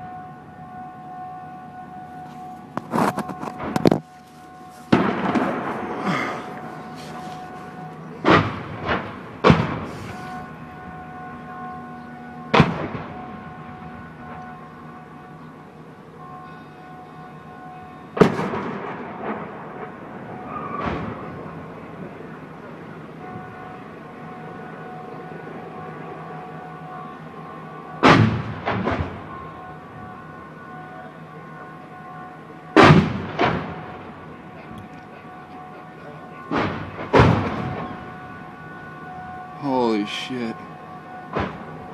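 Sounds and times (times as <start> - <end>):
mortar rounds exploding: 8.2 - 10.1.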